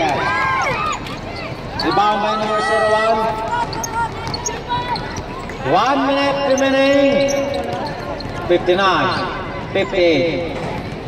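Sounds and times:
voices calling out: 0:00.0 - 0:10.9
basketball dribbling on hard court: 0:03.3 - 0:11.0.

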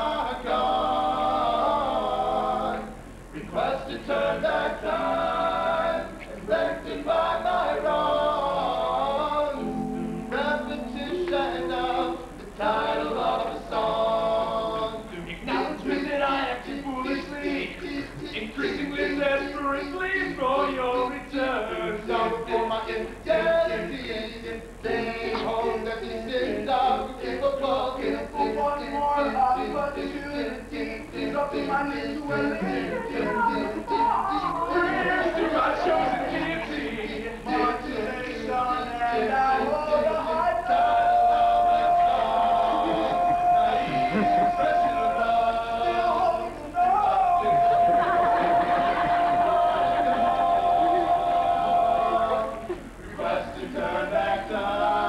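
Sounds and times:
male a cappella group singing: 0:00.0 - 0:55.0.

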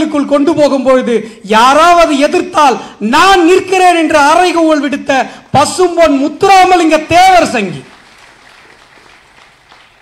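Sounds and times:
faint audience applause: 0:07.8 - 0:10.0.

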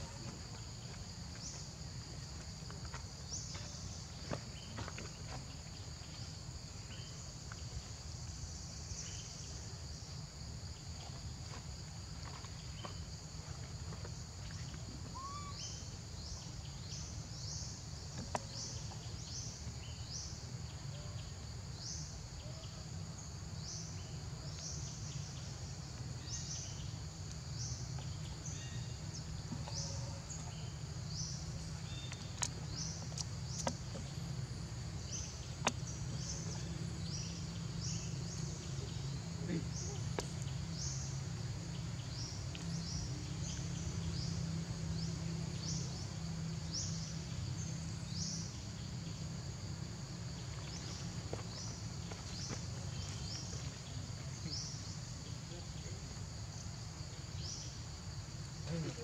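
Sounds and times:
insect chorus: 0:00.0 - 0:59.0.

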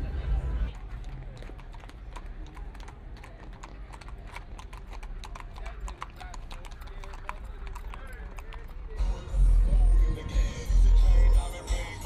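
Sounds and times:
horse hooves clopping on asphalt: 0:00.7 - 0:09.0.

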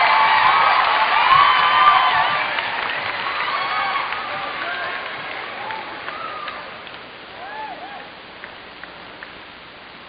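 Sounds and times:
fans shouting: 0:00.0 - 0:06.8, 0:07.4 - 0:08.2
audience applauding: 0:00.0 - 0:08.6.

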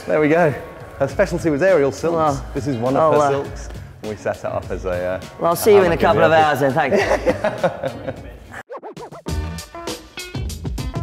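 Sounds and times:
background music with beat: 0:00.0 - 0:11.0
record scratch effect: 0:08.6 - 0:09.4.

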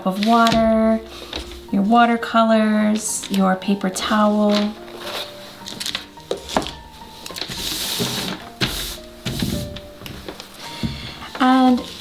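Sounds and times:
soft background music: 0:00.0 - 0:12.0
paper towel rustling: 0:04.1 - 0:12.0.

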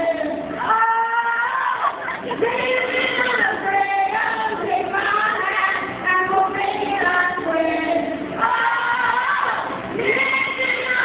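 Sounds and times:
amateur karaoke singing: 0:00.0 - 0:11.0.

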